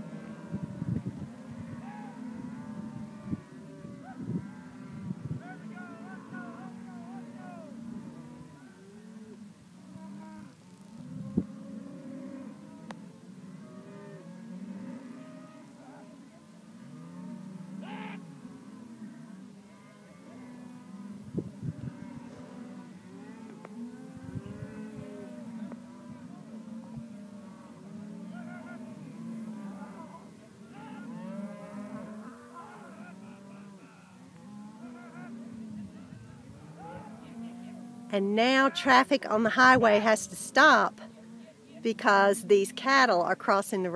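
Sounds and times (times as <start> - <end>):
cattle mooing and bawling: 0.0 - 43.2.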